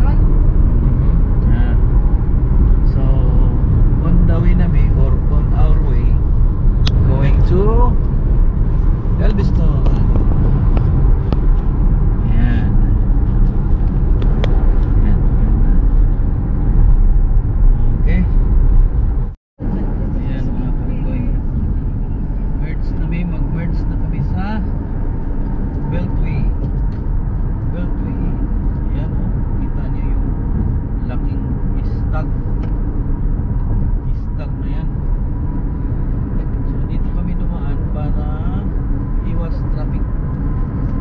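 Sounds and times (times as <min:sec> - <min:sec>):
car cabin road and engine noise: 0:00.0 - 0:41.0.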